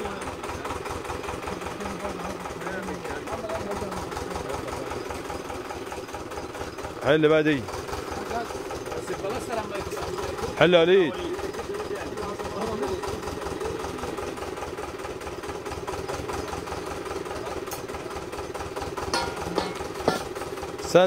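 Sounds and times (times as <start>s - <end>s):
drilling rig engine running: 0.0s - 21.0s.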